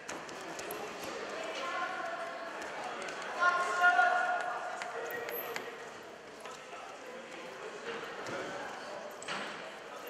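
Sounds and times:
voices echoing in a hall: 0:00.0 - 0:10.0.

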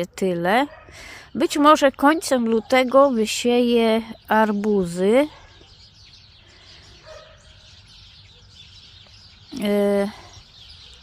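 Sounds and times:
distant birds chirping: 0:00.0 - 0:11.0.

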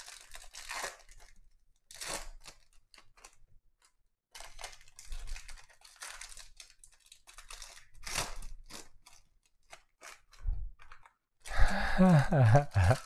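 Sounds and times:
plastic foil wrappers crinkling: 0:00.0 - 0:03.4, 0:04.3 - 0:12.2.

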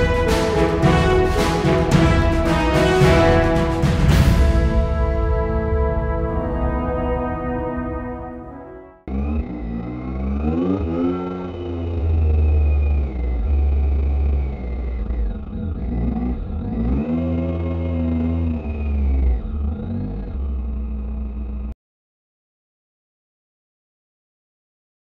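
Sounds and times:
motorcycle engine accelerating: 0:09.1 - 0:21.7.

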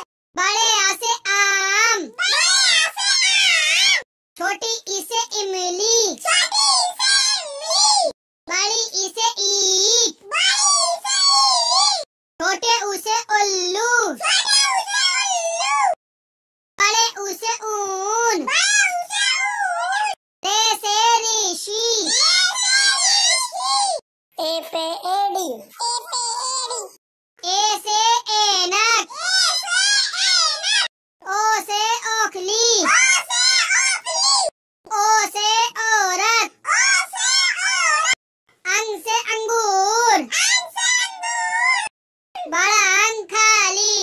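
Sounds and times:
child singing a rhyme: 0:00.4 - 0:16.0, 0:16.8 - 0:44.0.

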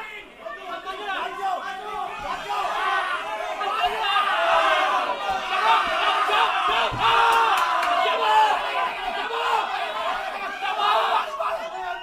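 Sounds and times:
crowd shouting and yelling: 0:00.0 - 0:12.0
thump: 0:06.7 - 0:07.2.

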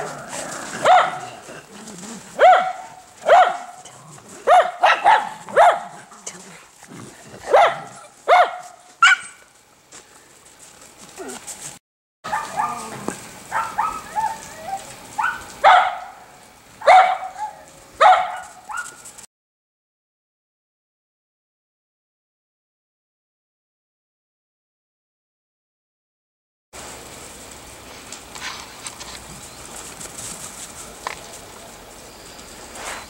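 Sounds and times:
dogs barking: 0:00.0 - 0:06.3, 0:07.3 - 0:09.4, 0:12.3 - 0:19.1.

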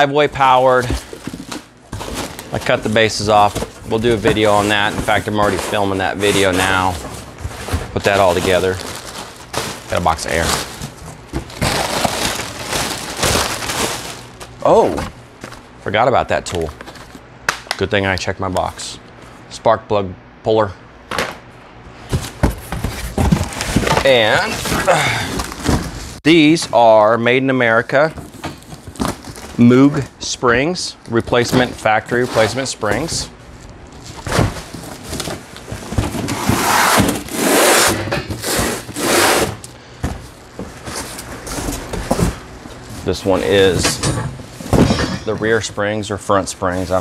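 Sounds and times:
cardboard rustling: 0:00.4 - 0:15.6, 0:22.0 - 0:26.2, 0:28.0 - 0:30.1, 0:31.4 - 0:33.3, 0:33.9 - 0:43.8
cardboard thumps: 0:22.1 - 0:26.0.

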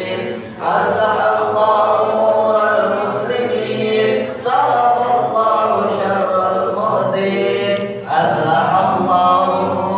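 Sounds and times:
men chanting together: 0:00.0 - 0:09.9.

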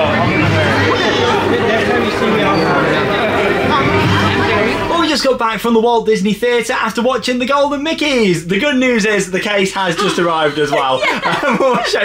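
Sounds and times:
audience chatter: 0:00.0 - 0:05.6, 0:09.5 - 0:12.0.

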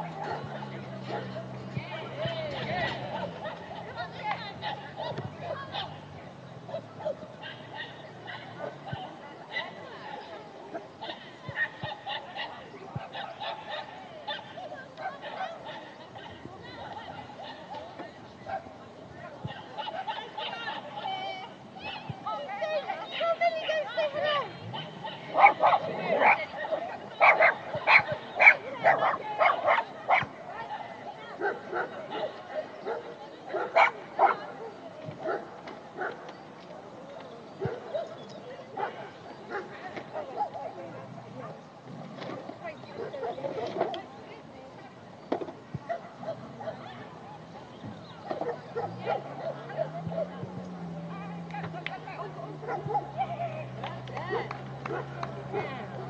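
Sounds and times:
dog barking: 0:24.8 - 0:26.4, 0:27.2 - 0:30.3, 0:31.4 - 0:34.5, 0:52.6 - 0:53.2.

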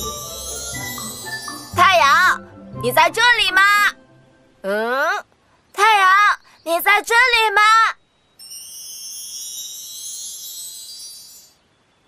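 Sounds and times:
high ringing cartoon tone: 0:00.0 - 0:02.4, 0:08.4 - 0:11.6.

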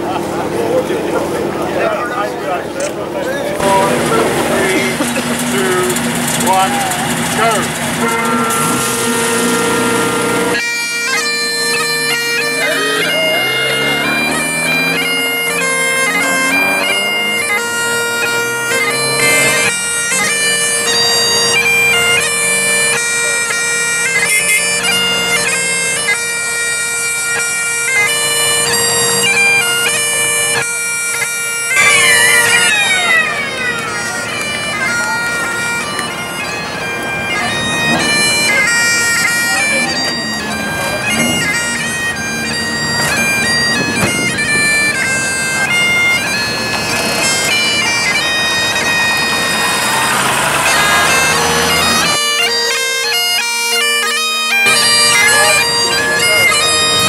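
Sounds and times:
bagpipe drone: 0:00.0 - 0:57.0
bagpipes playing a tune: 0:00.0 - 0:57.0.

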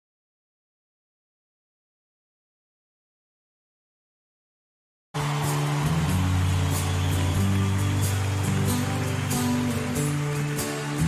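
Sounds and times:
audience applause: 0:05.2 - 0:11.0
country band playing a ballad: 0:05.9 - 0:11.0.

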